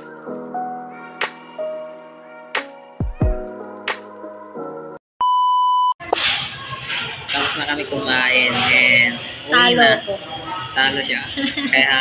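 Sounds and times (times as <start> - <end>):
high test-tone beep: 5.2 - 6.0
noisy background: 6.0 - 12.0.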